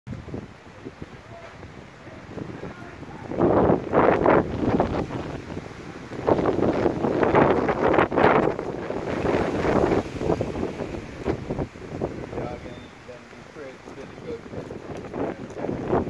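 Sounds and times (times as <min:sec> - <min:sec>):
leafy branches rustling: 0:00.2 - 0:16.0.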